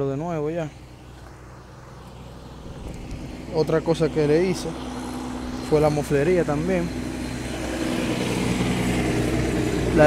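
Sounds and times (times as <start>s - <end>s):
pickup engine idling: 0.0s - 10.0s.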